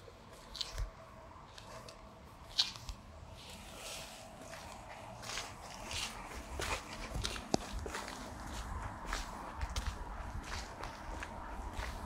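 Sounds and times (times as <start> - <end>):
footsteps on paved path: 0.2 - 12.0.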